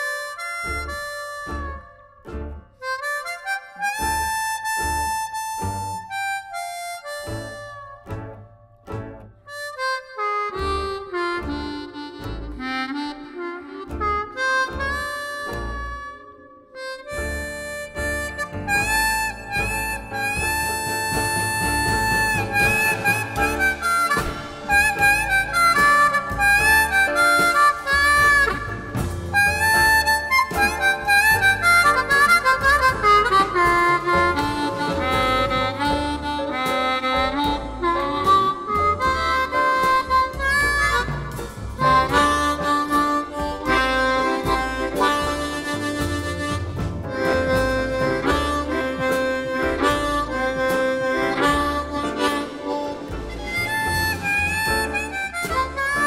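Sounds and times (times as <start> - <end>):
harmonica playing blues: 0.0 - 56.0.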